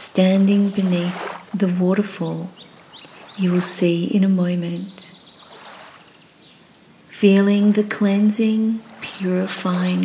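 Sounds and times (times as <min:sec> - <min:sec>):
soft background hiss: 0:00.0 - 0:10.0
faint bird chirp: 0:02.2 - 0:06.9.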